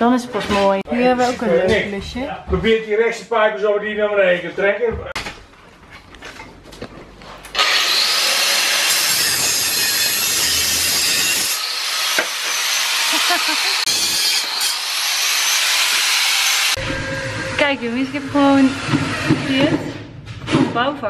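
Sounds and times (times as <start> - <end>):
angle grinder cutting metal: 7.5 - 19.8.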